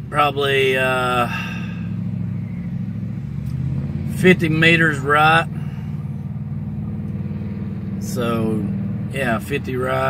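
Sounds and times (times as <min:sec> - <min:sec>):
engine idling: 0:00.0 - 0:10.0.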